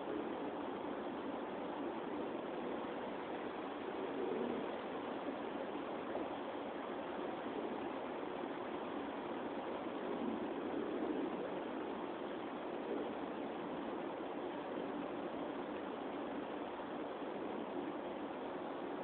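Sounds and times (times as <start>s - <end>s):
outdoor background hiss: 0.0s - 19.0s.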